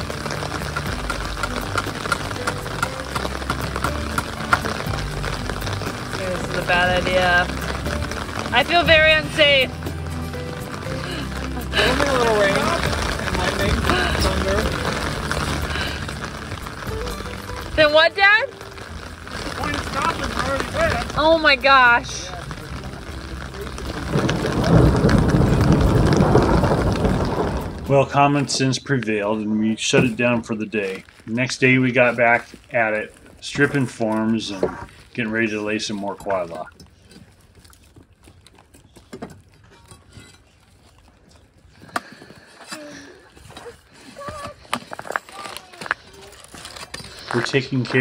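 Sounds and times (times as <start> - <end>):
loud rumble of thunder: 23.8 - 28.3.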